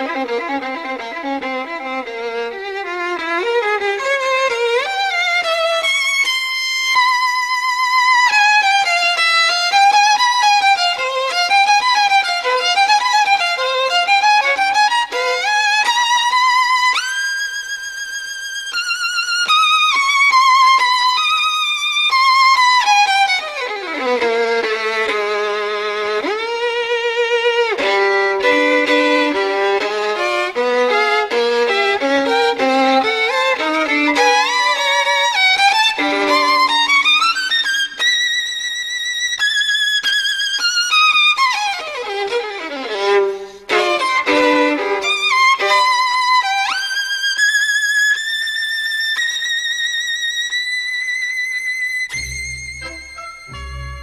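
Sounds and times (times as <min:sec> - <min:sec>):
solo violin: 0:00.0 - 0:54.0.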